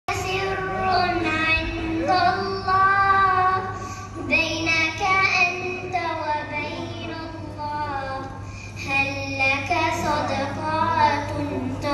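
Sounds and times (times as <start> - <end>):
girl singing unaccompanied: 0.1 - 11.9.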